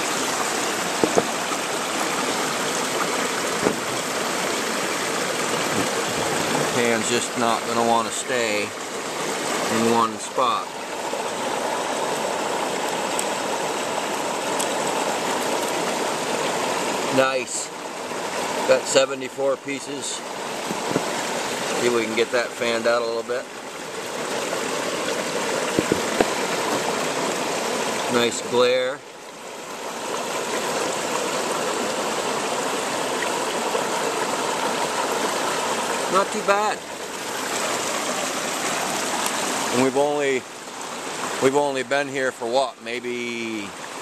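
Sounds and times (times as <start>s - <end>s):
creek water rushing: 0.0s - 44.0s.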